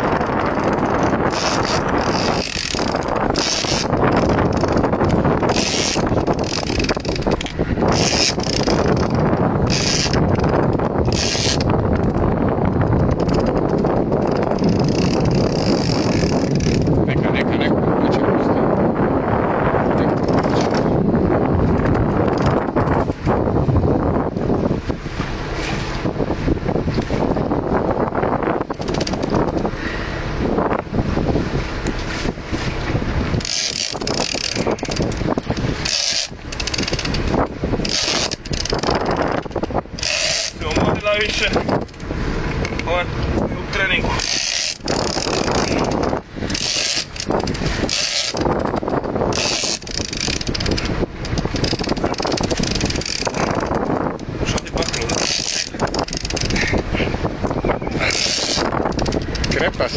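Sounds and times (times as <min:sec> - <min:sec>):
steady rushing noise: 0:00.0 - 0:59.9
fishing reel whirring: 0:00.2 - 0:11.8, 0:14.2 - 0:16.9, 0:33.3 - 0:40.6, 0:44.1 - 0:54.2, 0:54.8 - 0:56.8, 0:57.6 - 0:59.6
fishing reel ratchet clicking: 0:00.9 - 0:10.2, 0:11.1 - 0:11.7, 0:13.2 - 0:16.9, 0:33.4 - 0:40.6, 0:44.2 - 0:53.9, 0:54.6 - 0:56.7, 0:58.0 - 0:59.6.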